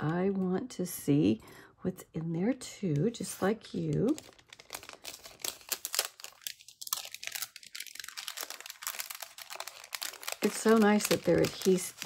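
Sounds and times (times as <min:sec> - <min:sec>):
plastic bag crinkling: 0:03.2 - 0:12.0.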